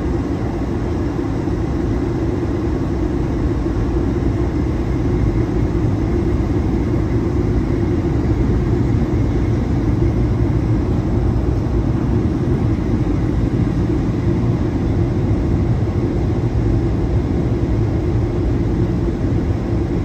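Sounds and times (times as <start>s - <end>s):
airliner cabin engine rush: 0.0s - 20.0s.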